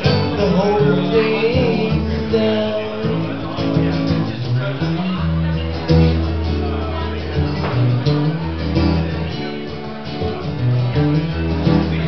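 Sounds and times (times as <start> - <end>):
acoustic guitar chords: 0.0 - 12.0.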